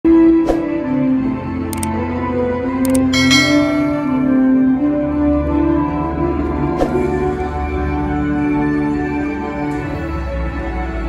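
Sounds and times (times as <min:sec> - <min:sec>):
background music: 0:00.1 - 0:11.0
notification bell ding: 0:02.9 - 0:04.6.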